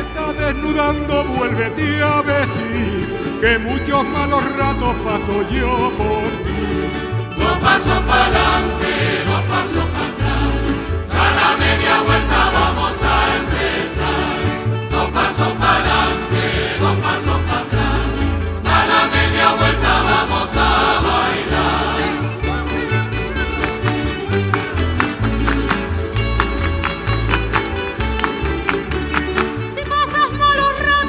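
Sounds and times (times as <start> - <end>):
bass line: 0.0 - 31.0
strummed string instruments: 0.0 - 31.0
chorus of voices singing: 4.8 - 22.6.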